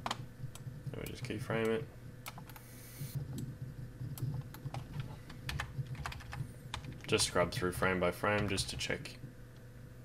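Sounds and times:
computer keyboard typing: 0.0s - 9.0s
low steady hum: 0.0s - 10.0s.

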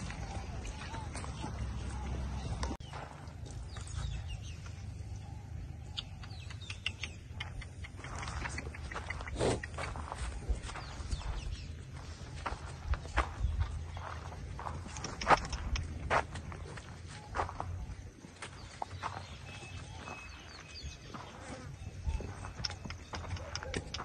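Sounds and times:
steady low rumble: 0.0s - 21.2s
hooves stepping on dry dirt: 0.0s - 24.0s.

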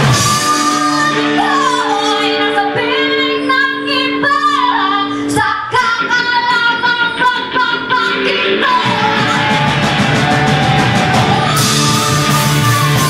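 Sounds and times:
live rock band playing: 0.0s - 13.0s
person singing: 0.0s - 13.0s.

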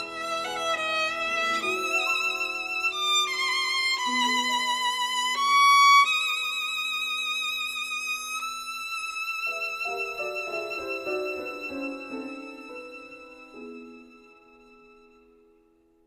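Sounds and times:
violin with vibrato: 0.0s - 15.4s.

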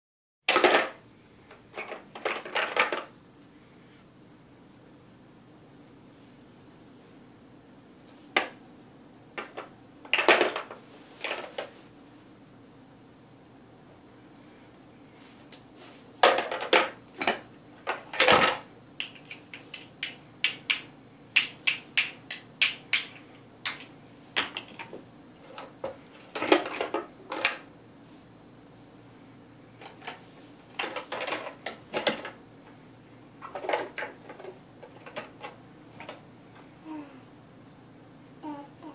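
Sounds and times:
plastic toys clattering: 0.5s - 1.0s, 1.7s - 3.1s, 9.4s - 11.7s, 16.2s - 19.9s, 23.0s - 27.7s, 29.8s - 32.4s, 33.4s - 36.2s
plastic toy blocks clacking: 30.8s - 32.3s.

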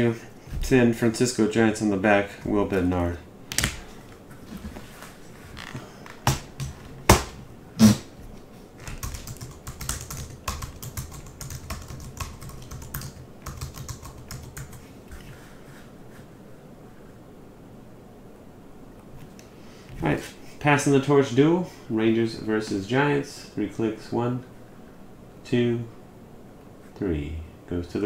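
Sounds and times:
typing on computer keyboard: 8.9s - 14.8s.

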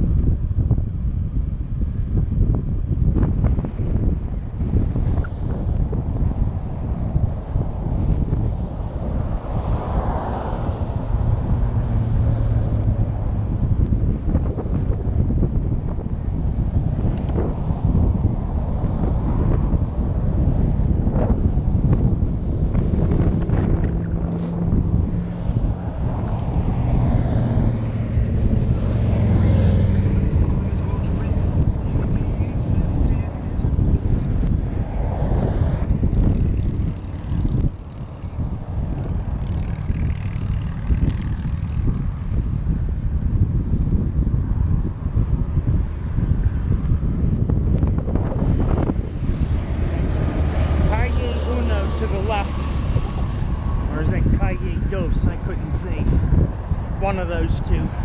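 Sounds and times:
cars passing: 0.0s - 58.0s
wind on microphone: 0.0s - 58.0s.

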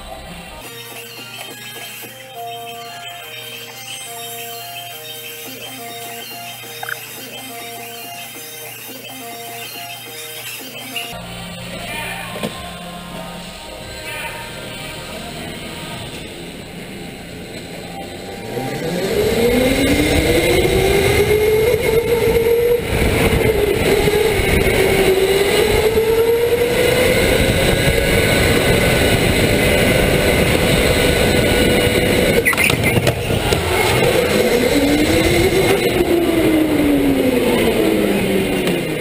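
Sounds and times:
electric go-kart motor whining: 14.4s - 39.0s.

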